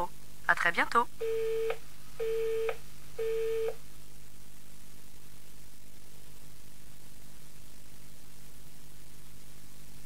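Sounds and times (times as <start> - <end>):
telephone busy tone beeps: 1.2 - 3.8.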